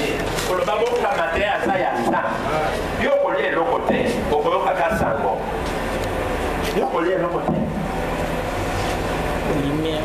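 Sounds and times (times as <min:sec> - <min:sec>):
sound system hum: 0:00.0 - 0:10.0.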